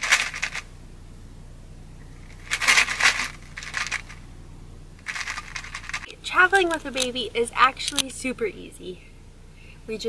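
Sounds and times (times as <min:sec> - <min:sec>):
plastic cup and ice rattling: 0:00.0 - 0:00.6, 0:02.3 - 0:04.2, 0:05.0 - 0:07.1.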